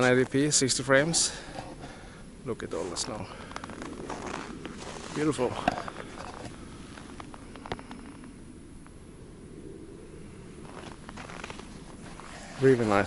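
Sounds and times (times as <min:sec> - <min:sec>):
steady low rumble: 0:00.0 - 0:13.0
footsteps crunching in snow: 0:02.7 - 0:07.5, 0:10.6 - 0:13.0.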